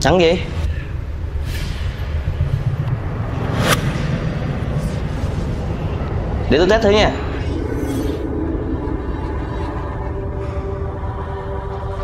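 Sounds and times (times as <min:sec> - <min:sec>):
low rumbling drone: 0:00.0 - 0:12.0
sharp swish: 0:03.3 - 0:05.6.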